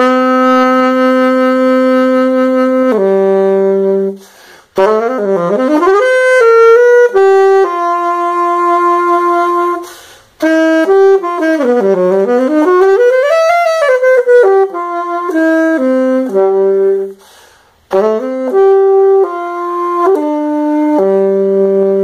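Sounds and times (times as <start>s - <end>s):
saxophone melody: 0.0s - 22.0s.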